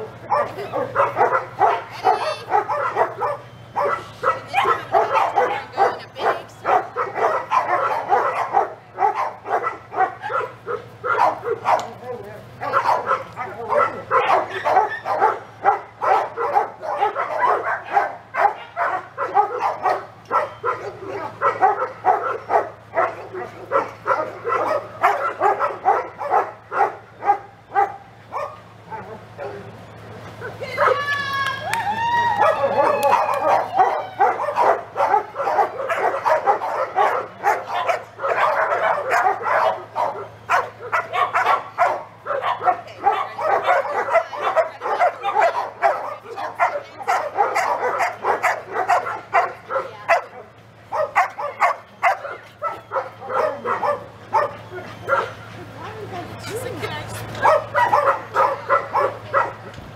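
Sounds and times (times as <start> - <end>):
dogs barking: 0.0 - 31.1, 32.3 - 59.9
dog whining: 0.3 - 15.4, 51.0 - 56.7.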